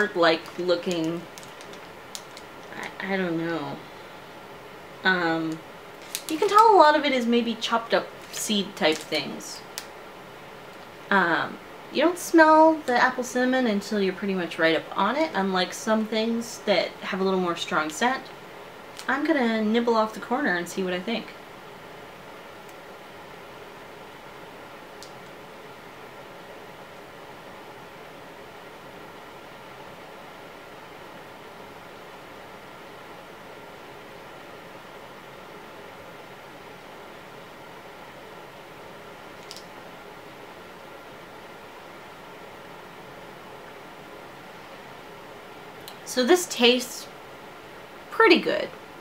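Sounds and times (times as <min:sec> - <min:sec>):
faint hum: 0:00.0 - 0:49.0
low hiss: 0:00.0 - 0:49.0
tiny clicks: 0:39.4 - 0:39.7.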